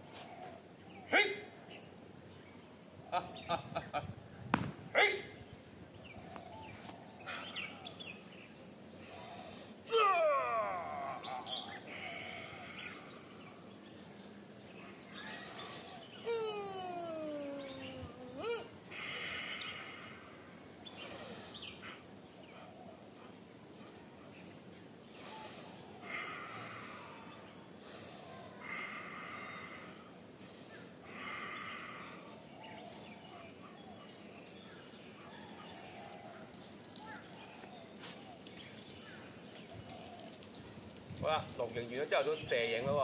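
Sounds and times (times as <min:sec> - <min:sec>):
long cries falling in pitch: 0:09.9 - 0:13.1, 0:16.2 - 0:20.4.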